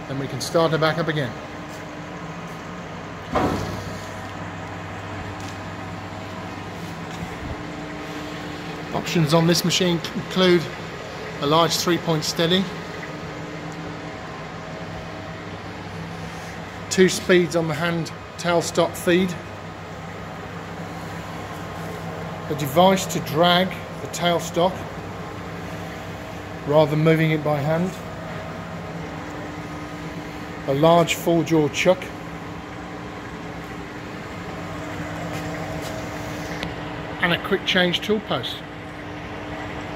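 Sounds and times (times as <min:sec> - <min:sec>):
lathe running hum: 0:00.0 - 0:39.9.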